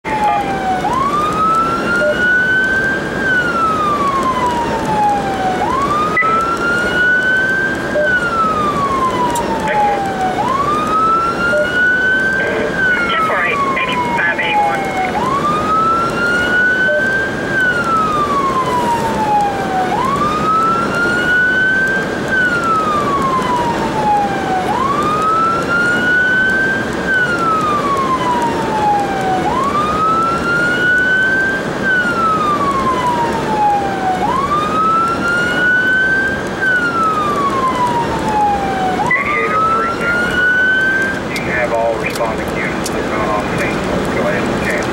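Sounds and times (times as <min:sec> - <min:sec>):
emergency siren wailing: 0:00.0 - 0:44.9
road noise: 0:00.0 - 0:44.9.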